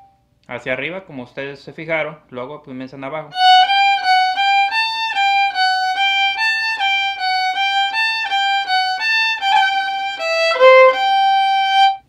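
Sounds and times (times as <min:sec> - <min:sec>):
solo violin bowed notes: 0:03.4 - 0:12.0.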